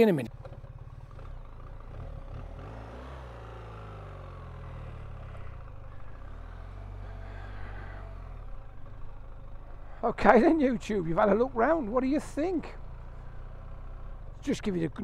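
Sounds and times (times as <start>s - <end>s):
motorcycle engine revving: 0.3s - 15.0s.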